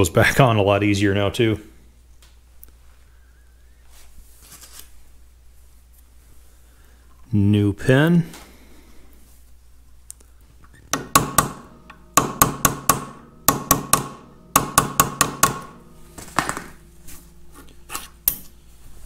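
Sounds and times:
hammer tapping steel pin: 0:10.9 - 0:15.8.

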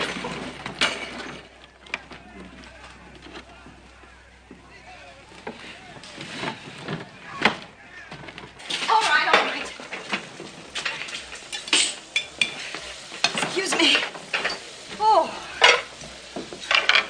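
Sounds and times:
plates pots and cutlery clattering: 0:00.0 - 0:03.5, 0:05.4 - 0:17.0
frying sizzle: 0:00.0 - 0:17.0.

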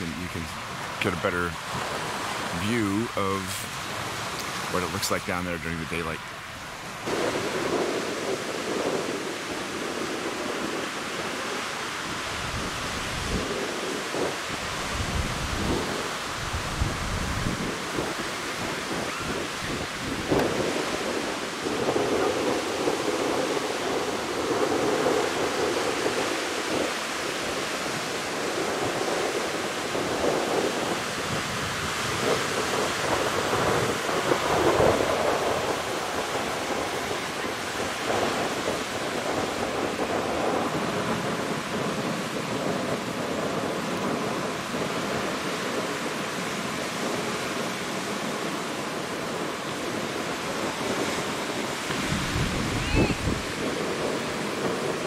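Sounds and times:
surf breaking on beach: 0:00.0 - 0:55.0
wind buffeting microphone: 0:00.0 - 0:55.0.

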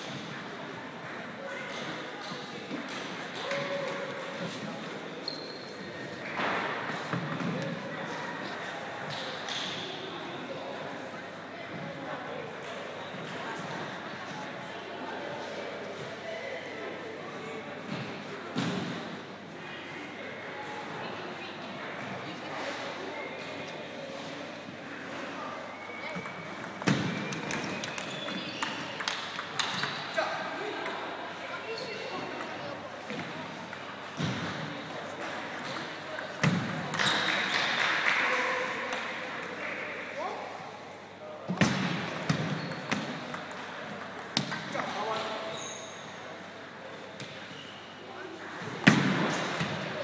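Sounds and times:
murmur of voices: 0:00.0 - 0:50.0.

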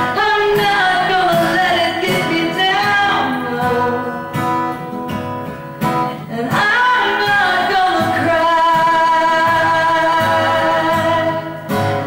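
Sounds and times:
acoustic guitar strum: 0:00.0 - 0:12.0.

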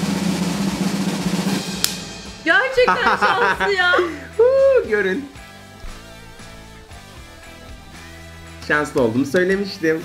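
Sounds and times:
sharp drum hit: 0:00.8 - 0:02.5.

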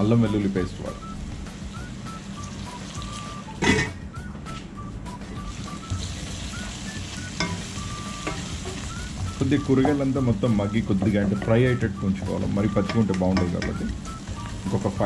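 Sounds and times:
vegetables sizzling in oil: 0:00.8 - 0:03.8, 0:05.4 - 0:11.7, 0:12.5 - 0:15.0
metal clank: 0:03.6 - 0:04.0.

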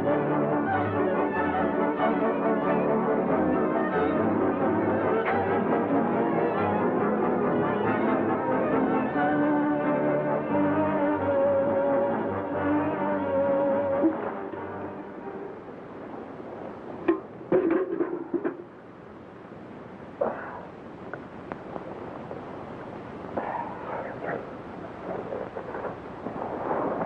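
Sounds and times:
orchestral music with brass: 0:00.0 - 0:15.7.

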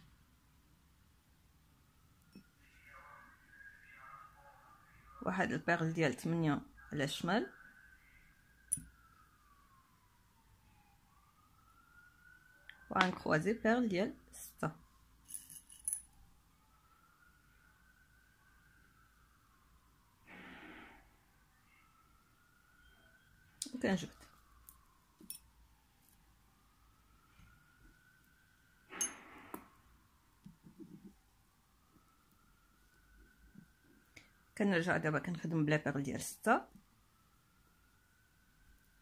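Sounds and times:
beads clinking in glass bowl: 0:15.2 - 0:16.1.

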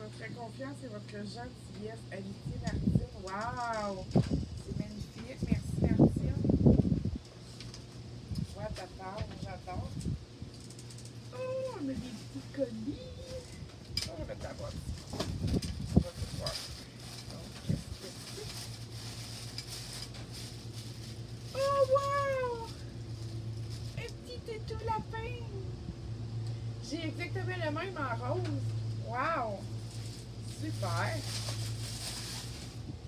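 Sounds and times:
steady low hum: 0:00.0 - 0:33.0
tissue paper rustling: 0:15.8 - 0:24.1, 0:29.7 - 0:32.9.

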